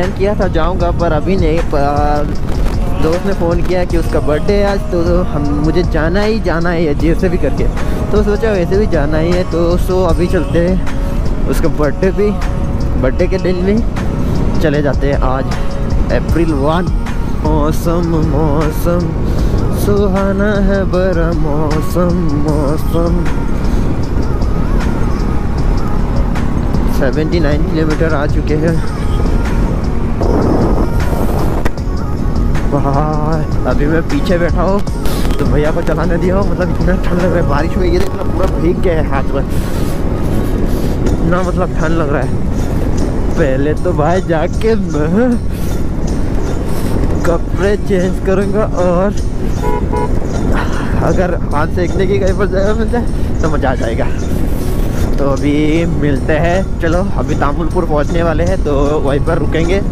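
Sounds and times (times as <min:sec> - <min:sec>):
faint music: 0:00.0 - 0:59.9
motorcycle engine cruising: 0:00.0 - 0:59.9
wind buffeting microphone: 0:00.0 - 0:59.9
vehicle horn toots: 0:49.6 - 0:50.3.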